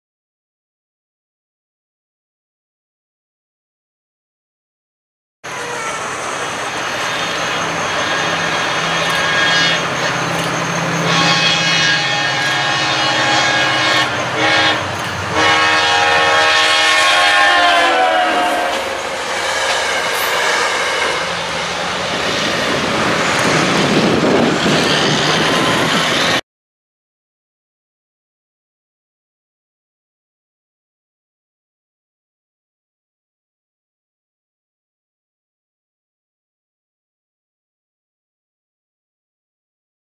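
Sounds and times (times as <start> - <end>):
train rumble and wheel clatter: 5.4 - 26.4
train horn blasts: 7.1 - 10.1, 10.9 - 21.4.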